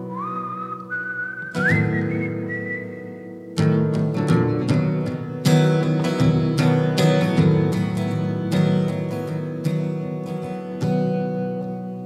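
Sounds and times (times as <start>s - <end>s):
man whistling a melody: 0.0s - 3.4s
strummed acoustic guitar: 0.0s - 12.0s.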